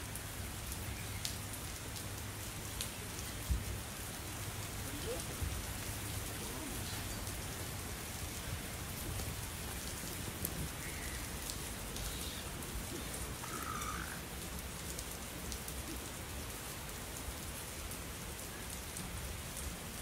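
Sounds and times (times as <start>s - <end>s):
steady rain falling: 0.0s - 20.0s
short animal calls: 12.0s - 14.2s.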